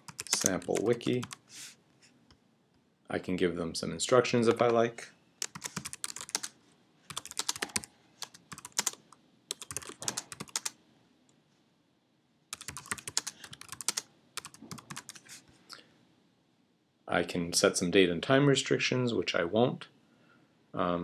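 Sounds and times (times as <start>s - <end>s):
typing on computer keyboard: 0.0s - 1.4s, 5.4s - 6.5s, 7.1s - 10.8s, 12.6s - 15.2s.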